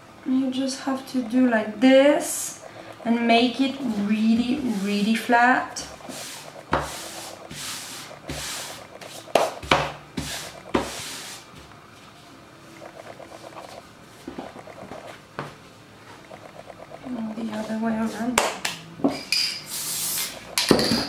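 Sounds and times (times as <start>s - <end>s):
hands rubbing fabric: 5.8s - 11.6s.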